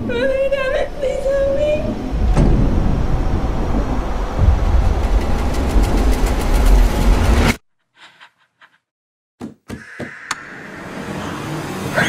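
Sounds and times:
deep rumble: 1.0 - 7.6.

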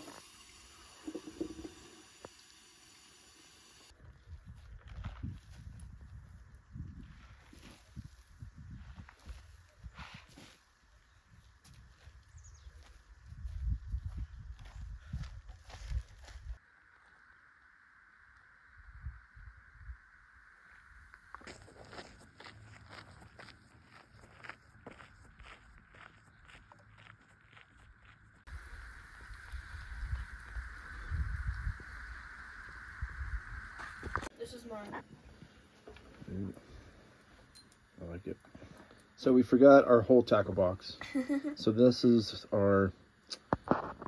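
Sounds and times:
wind buffeting microphone: 4.0 - 10.1, 11.8 - 16.6, 28.5 - 34.3
footsteps on dirt and grass: 4.0 - 16.6, 21.2 - 28.5.

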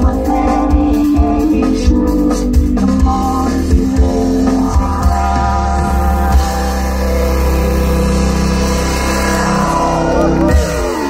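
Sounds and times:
deep steady bass: 0.0 - 11.0
long-held keyboard chords: 0.0 - 11.0.

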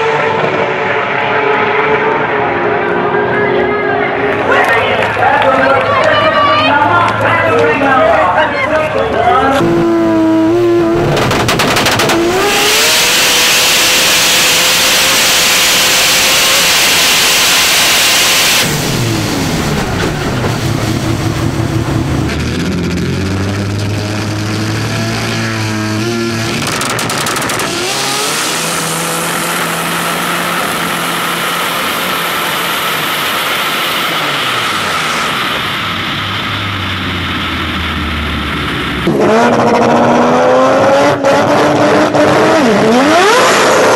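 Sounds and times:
race car engine revving: 0.0 - 43.9.

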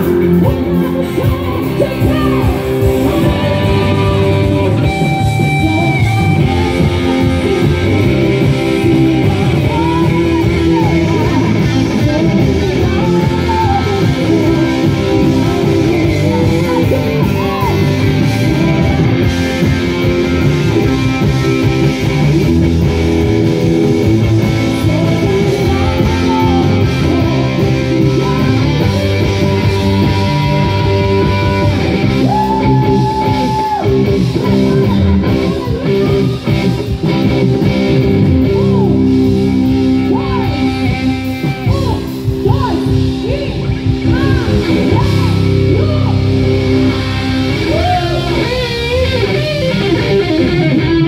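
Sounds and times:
electric guitar lead notes: 0.0 - 51.0
live rock band playing: 0.0 - 51.0
woman singing: 0.4 - 18.7, 24.7 - 31.7.

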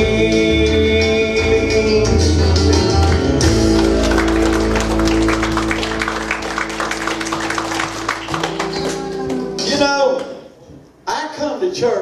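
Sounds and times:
church band holding a chord: 0.1 - 10.2
congregation applauding: 2.8 - 10.3.

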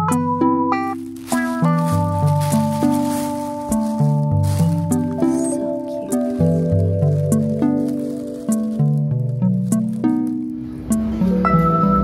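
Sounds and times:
soft instrumental music: 0.0 - 12.0.

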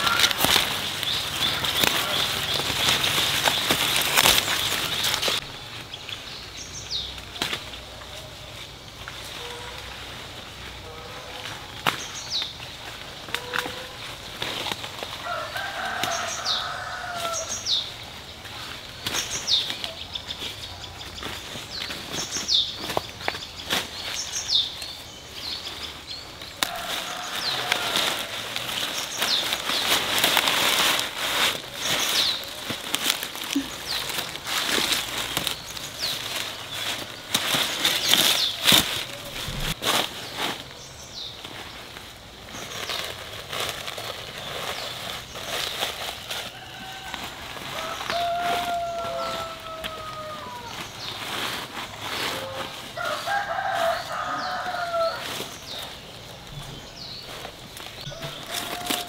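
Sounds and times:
leaves rustling: 0.0 - 59.0
rooster crowing: 15.2 - 17.6, 26.6 - 28.5, 46.4 - 50.8, 52.3 - 55.4, 58.1 - 59.0.

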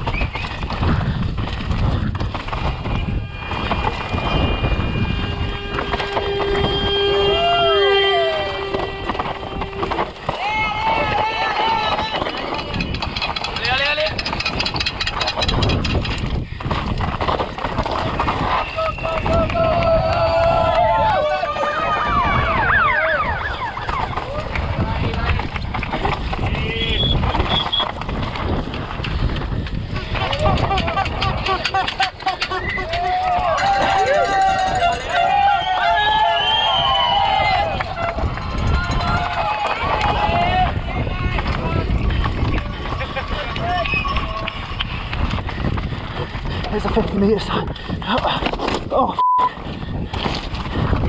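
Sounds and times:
bike rattling over rocks: 0.0 - 7.8, 8.7 - 49.0, 49.6 - 51.0
wind on camera: 0.0 - 51.0
spectators shouting and cheering: 3.4 - 13.6, 18.1 - 25.4, 30.2 - 42.0.

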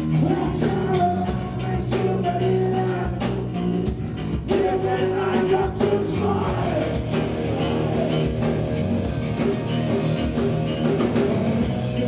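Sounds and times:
bass guitar: 0.0 - 12.0
drum kit beat: 0.0 - 12.0
electric guitars: 0.0 - 12.0.

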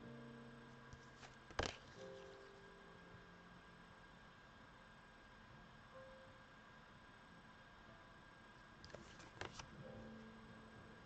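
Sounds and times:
faint hiss and hum: 0.0 - 11.0.

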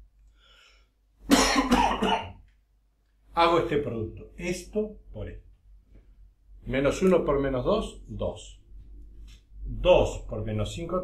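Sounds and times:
man coughing: 1.3 - 2.4.

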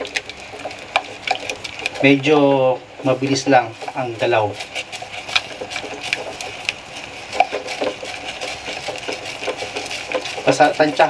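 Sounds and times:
spatula scraping saucepan: 3.4 - 11.0.

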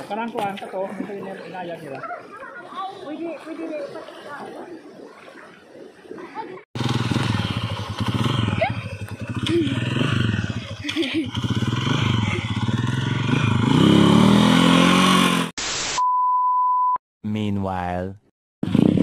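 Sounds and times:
small motorcycle engine revving: 6.8 - 15.5, 18.6 - 19.0
burst of static: 15.6 - 16.0
steady test-tone beep: 16.0 - 17.0.

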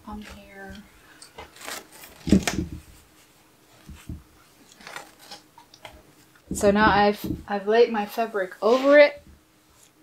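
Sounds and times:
soft bump: 3.8 - 4.3.

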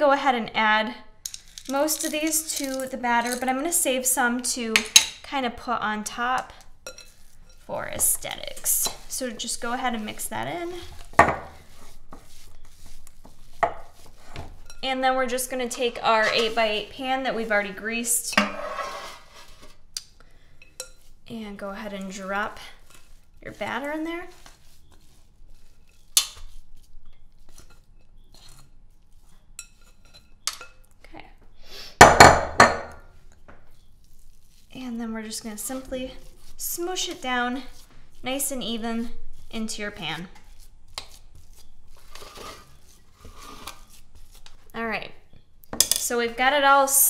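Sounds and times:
spoon scraping dough in bowl: 1.3 - 5.1, 5.8 - 19.8, 20.6 - 30.9, 33.6 - 44.7.

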